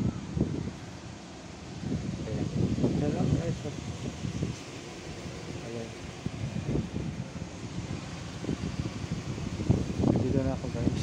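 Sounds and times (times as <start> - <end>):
steady outdoor noise: 0.0 - 11.0
wind buffeting microphone: 0.0 - 11.0.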